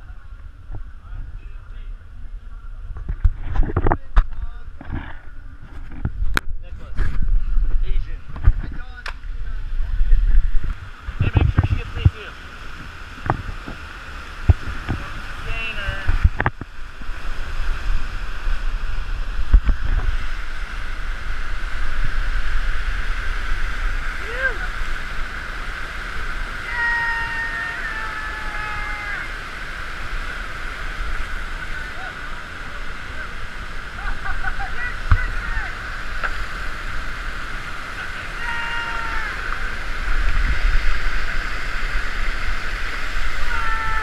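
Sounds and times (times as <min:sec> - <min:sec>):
rushing water: 0:00.0 - 0:44.0
wind rumble on microphone: 0:00.0 - 0:44.0.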